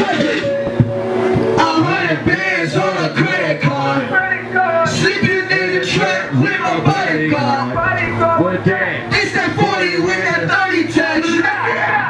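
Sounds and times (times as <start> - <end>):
hip hop backing track: 0.0 - 12.0
person rapping into microphone: 1.6 - 12.0.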